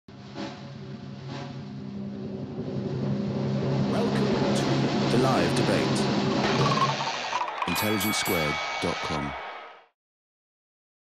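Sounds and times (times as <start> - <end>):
low sustained drone: 1.7 - 6.4.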